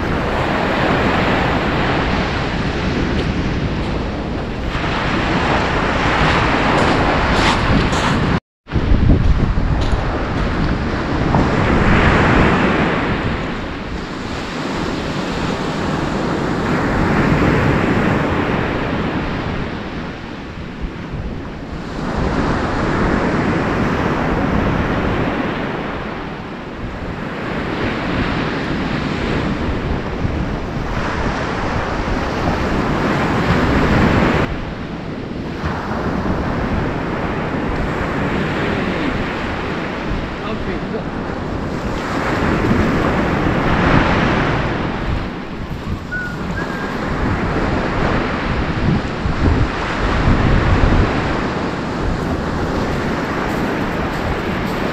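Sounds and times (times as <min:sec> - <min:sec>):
wind buffeting microphone: 0:00.0 - 0:54.9
surf breaking on shingle: 0:52.0 - 0:54.9.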